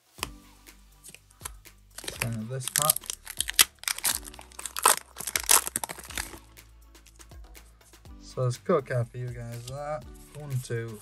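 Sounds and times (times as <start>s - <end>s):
cards handled with light clicks: 1.0s - 6.4s, 9.5s - 10.5s
foil wrapper crinkling and tearing: 1.1s - 7.2s.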